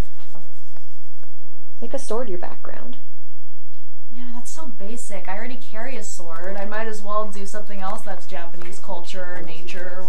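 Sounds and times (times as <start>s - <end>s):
marker pen scribbling: 0.0s - 1.2s.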